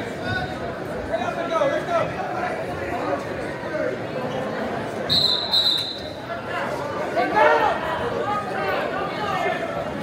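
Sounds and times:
spectators chattering: 0.0 - 10.0
referee's whistle blast: 5.1 - 6.2.

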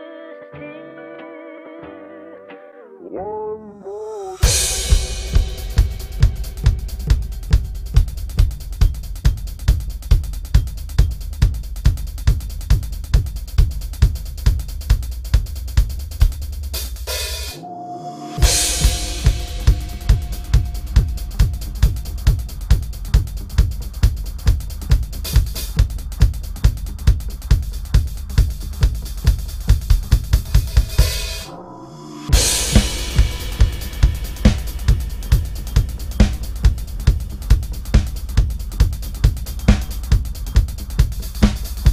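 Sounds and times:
backing track: 4.2 - 14.9, 15.5 - 41.9
rising noise sweep: 4.4 - 8.8, 17.6 - 23.0, 30.4 - 38.2
bright cymbal wash: 4.4 - 11.6, 16.7 - 25.9, 27.9 - 41.9
electronic drum kit playing: 4.4 - 41.9.

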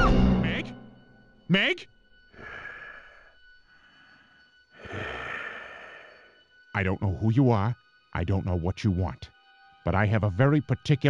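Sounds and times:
breathy exhalations: 2.2 - 6.5.

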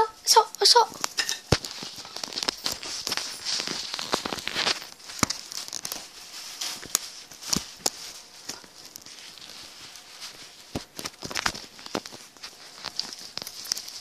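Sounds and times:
microphone rubbing rustle: 0.9 - 14.0.

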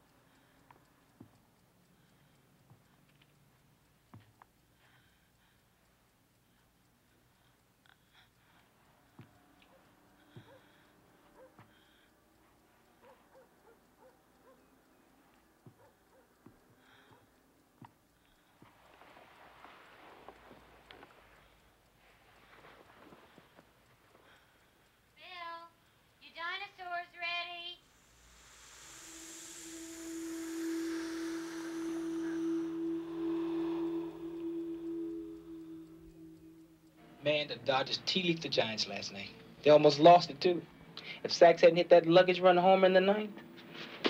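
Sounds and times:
high shimmering wash: 27.5 - 43.5
soft pitched notes: 27.8 - 40.7.

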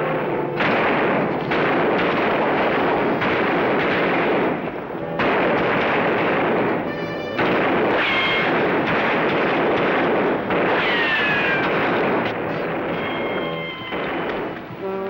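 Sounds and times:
revolver and rifle shots: 0.0 - 14.8.

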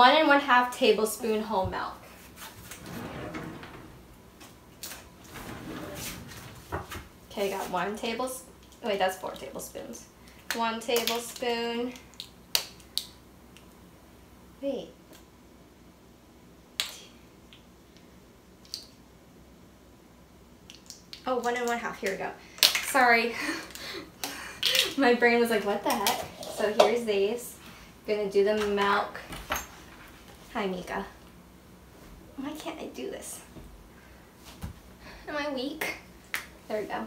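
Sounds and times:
kitchen drawer opening: 2.6 - 4.2, 5.0 - 7.1.

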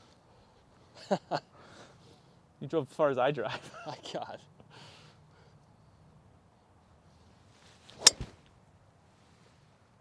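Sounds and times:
golf club swing swish: 7.6 - 8.5
golf ball impact crack: 7.9 - 8.6.

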